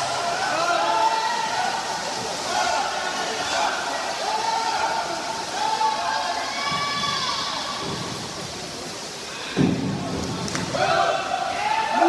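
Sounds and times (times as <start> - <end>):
spectators cheering and shouting: 0.0 - 8.0, 10.7 - 12.0.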